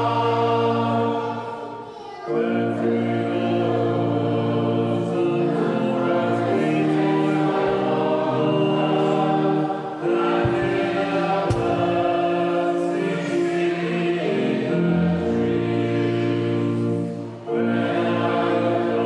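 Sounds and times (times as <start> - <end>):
congregation singing: 0.0 - 19.0.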